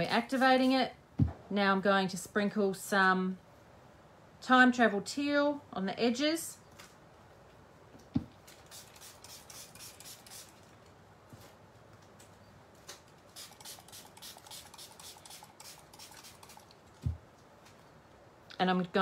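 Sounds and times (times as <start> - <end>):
spray bottle spritzing water: 8.6 - 10.6, 13.3 - 16.8.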